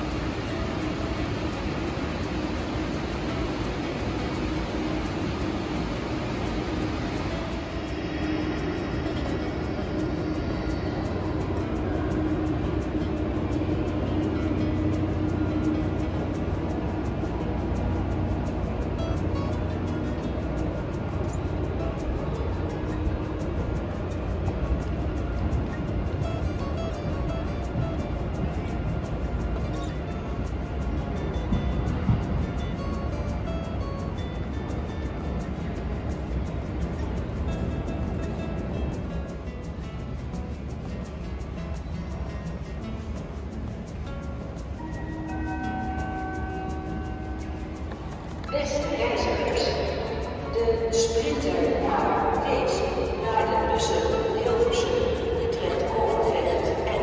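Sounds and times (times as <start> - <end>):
electric train running: 0.0 - 57.0
music playing: 0.0 - 57.0.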